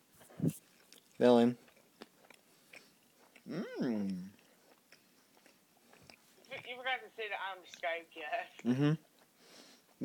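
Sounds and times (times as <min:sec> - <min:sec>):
faint chewing: 0:00.2 - 0:06.8
person speaking: 0:06.4 - 0:09.0.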